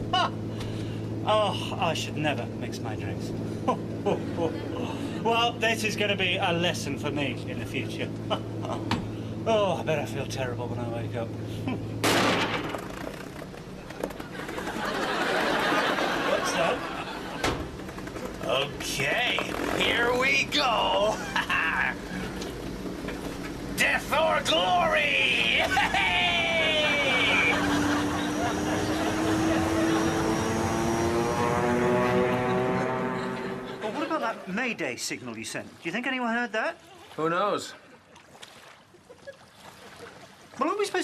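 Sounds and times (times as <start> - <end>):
propeller aircraft engines droning: 0.0 - 35.8
loud crash into water: 12.0 - 12.9.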